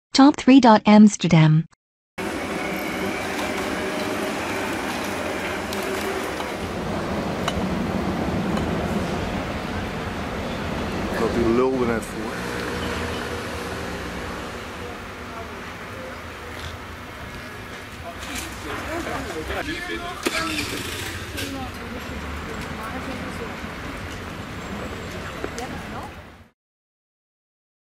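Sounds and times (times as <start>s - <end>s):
low traffic rumble: 2.2s - 26.5s
city street ambience: 2.2s - 26.6s
people chattering: 14.6s - 26.3s.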